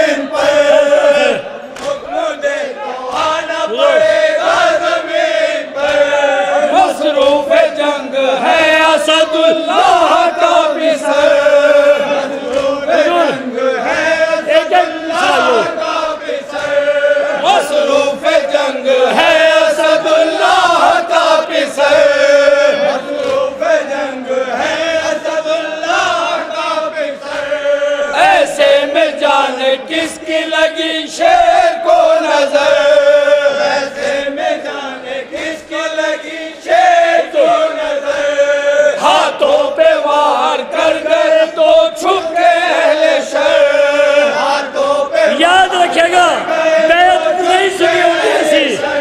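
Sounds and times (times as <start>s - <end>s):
men's chorus singing: 0.0s - 49.0s
man reciting into a microphone: 5.9s - 49.0s.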